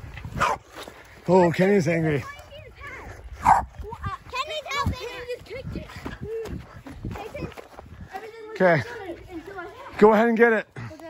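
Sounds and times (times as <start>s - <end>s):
dog barking and yipping: 3.4s - 3.7s.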